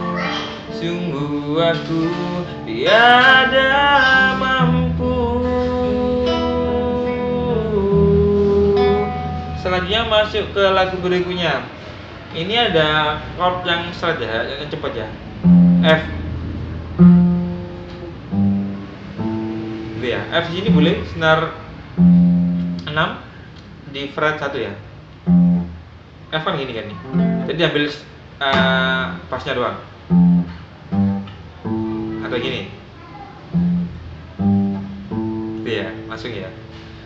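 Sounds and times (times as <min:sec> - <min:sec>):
acoustic guitar chord plucked: 0:00.0 - 0:11.4, 0:15.4 - 0:21.2, 0:21.9 - 0:22.9, 0:25.2 - 0:25.9, 0:27.0 - 0:27.6, 0:28.5 - 0:29.2, 0:30.0 - 0:37.0.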